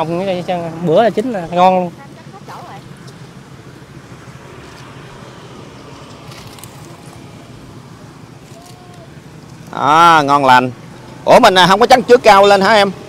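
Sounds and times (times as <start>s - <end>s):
faint clicks and rustles: 4.5s - 7.6s, 8.2s - 9.8s.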